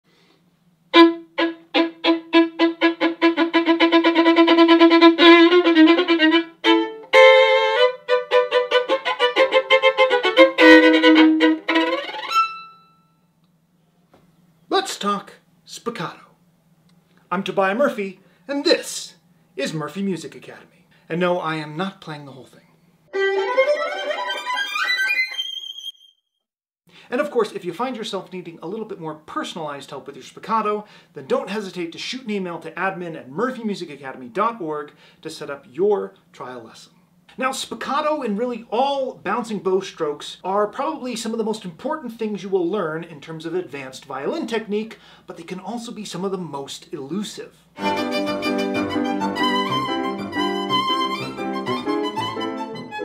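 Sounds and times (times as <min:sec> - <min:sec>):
solo violin spiccato: 0:00.9 - 0:12.8, 0:23.1 - 0:25.6, 0:47.8 - 0:53.0.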